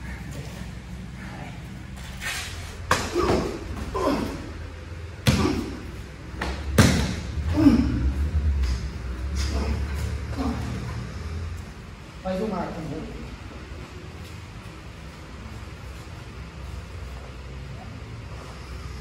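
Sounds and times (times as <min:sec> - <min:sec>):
person grunting: 0:03.0 - 0:04.6, 0:05.2 - 0:06.0, 0:07.4 - 0:08.4, 0:09.4 - 0:11.3.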